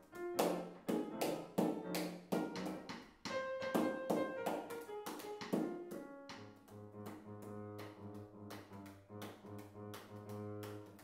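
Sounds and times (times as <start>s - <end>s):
upright piano held notes: 0.0s - 11.0s.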